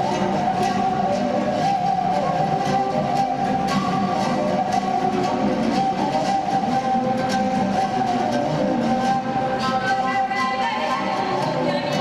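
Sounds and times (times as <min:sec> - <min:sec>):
wooden flute playing: 0:00.0 - 0:12.0.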